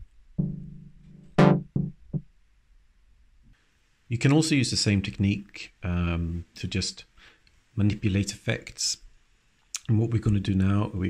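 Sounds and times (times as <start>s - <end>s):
synthesizer notes with filter sweep: 0.4s - 2.2s.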